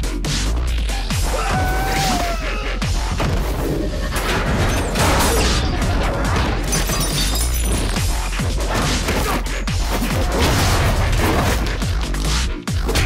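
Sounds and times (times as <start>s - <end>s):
action trailer music: 0.0s - 13.0s
fight hits and crashes: 4.2s - 11.9s.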